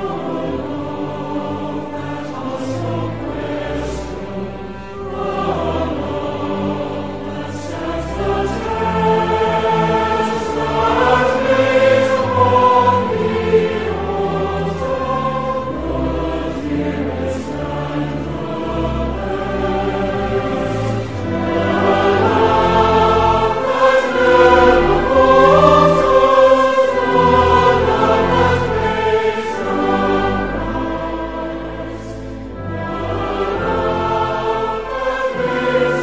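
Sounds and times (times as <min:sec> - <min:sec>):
instrumental accompaniment: 0:00.0 - 0:36.0
voices singing a hymn: 0:00.0 - 0:36.0.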